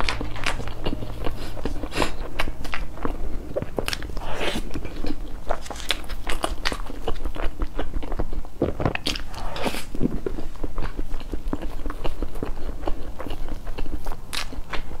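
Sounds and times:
biting and chewing cake: 0.0s - 15.0s.

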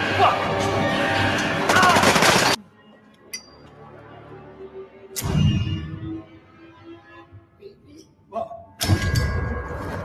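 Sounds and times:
rapid gunfire: 1.7s - 2.6s.

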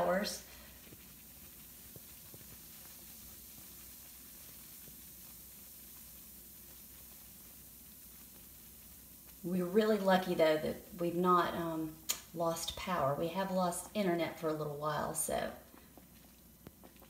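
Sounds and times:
tiny crackles: 0.0s - 13.1s, 15.0s - 17.0s
bath bomb fizzing in water: 0.0s - 17.0s.

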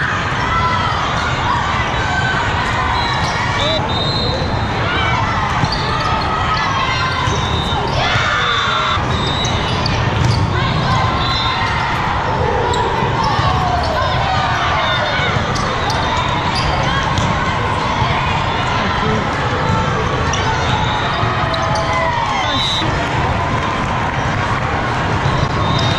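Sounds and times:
crowd murmur: 0.0s - 25.9s
players calling and shouting: 0.0s - 25.9s
balls struck and bouncing: 9.8s - 10.6s, 16.6s - 18.2s.

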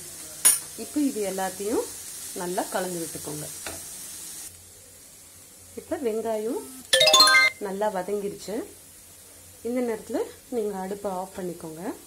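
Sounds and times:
onions sizzling in oil: 0.0s - 12.0s.

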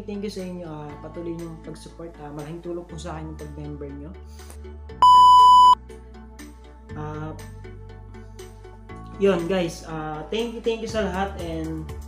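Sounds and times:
soft background music: 0.0s - 12.0s
high-pitched electronic beep: 5.0s - 5.8s.

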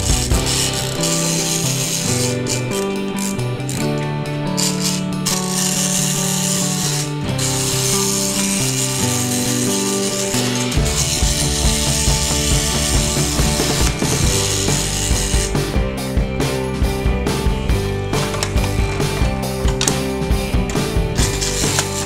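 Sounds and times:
rapid ratchet-like clicking: 0.0s - 15.7s, 20.7s - 22.0s
background music: 0.0s - 22.0s.

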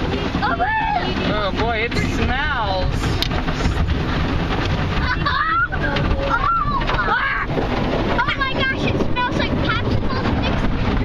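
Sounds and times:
car wash brushes scrubbing: 0.0s - 11.0s
water spraying: 0.0s - 11.0s
child's voice: 0.4s - 1.3s, 5.0s - 11.0s.

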